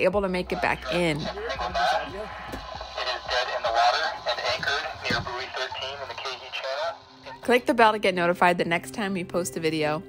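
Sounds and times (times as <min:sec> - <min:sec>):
person talking over radio: 0:00.4 - 0:07.6.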